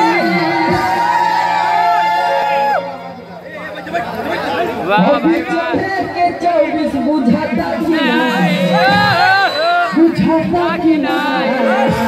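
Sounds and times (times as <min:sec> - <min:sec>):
voices talking and calling out: 0:00.0 - 0:12.0
loud voice over microphone: 0:04.5 - 0:09.2, 0:09.9 - 0:12.0.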